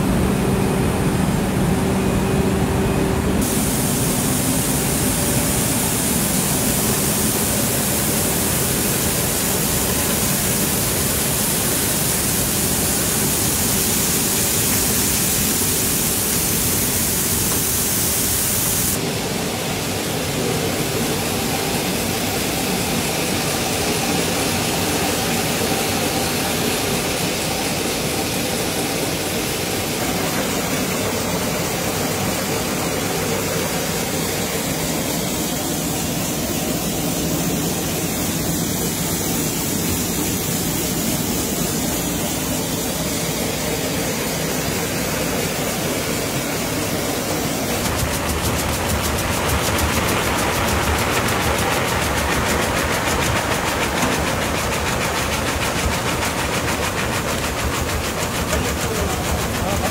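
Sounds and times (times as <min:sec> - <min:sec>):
factory machinery rattling: 0:00.1 - 0:59.9.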